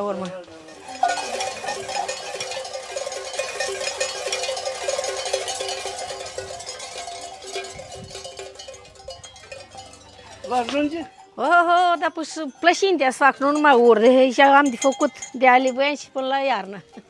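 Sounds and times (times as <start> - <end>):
animal bells jangling: 0.4 - 17.0.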